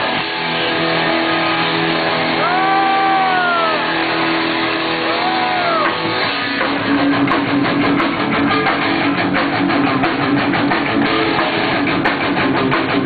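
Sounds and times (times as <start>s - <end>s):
punk rock band playing: 0.0s - 13.0s
long wails: 2.4s - 4.2s, 5.0s - 6.1s.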